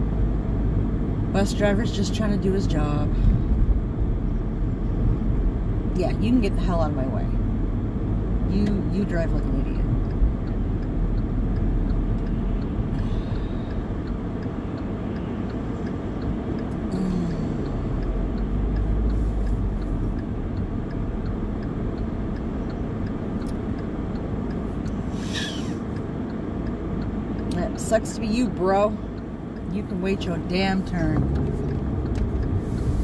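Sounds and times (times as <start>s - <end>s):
engine and road noise rumble: 0.0s - 33.0s
faint regular ticking: 7.3s - 33.0s.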